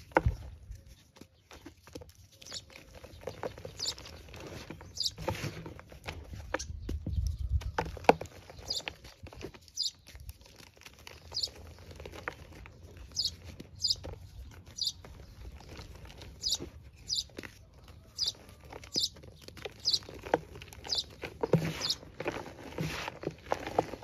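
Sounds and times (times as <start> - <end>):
chalk crunching and crumbling: 0.0 - 24.0.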